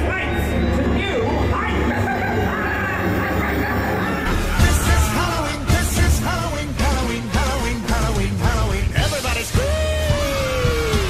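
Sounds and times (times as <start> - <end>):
crowd screaming: 0.3 - 6.5, 9.5 - 11.0
music with loud vocals: 2.4 - 11.0.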